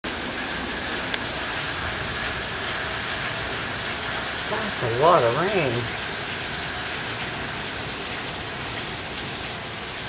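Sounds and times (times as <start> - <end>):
heavy rain pouring: 0.1 - 10.0.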